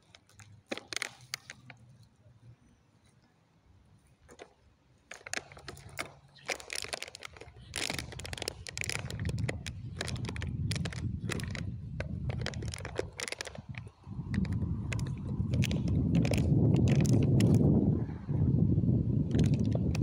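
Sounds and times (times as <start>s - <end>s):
dog chewing plastic bottle: 0.0s - 2.0s, 4.3s - 17.7s, 19.3s - 20.0s
wind on microphone: 5.7s - 20.0s.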